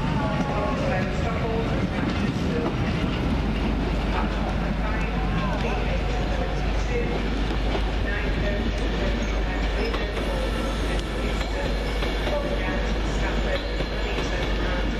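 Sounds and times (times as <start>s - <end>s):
train wheels running on track: 0.0s - 14.9s.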